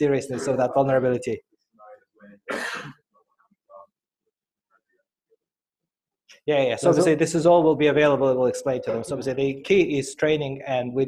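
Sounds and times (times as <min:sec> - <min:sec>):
person clearing throat: 0:02.4 - 0:03.1.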